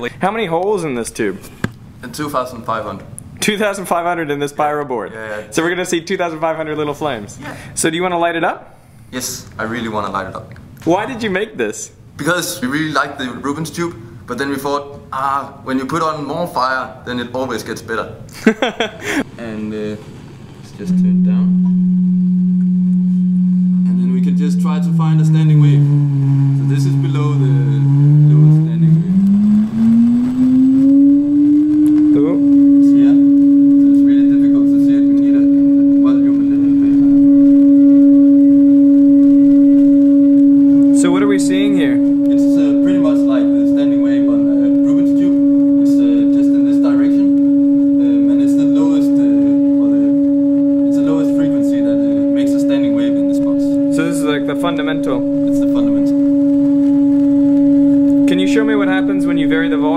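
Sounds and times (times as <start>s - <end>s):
pure test tone from loudspeaker: 20.7s - 59.9s.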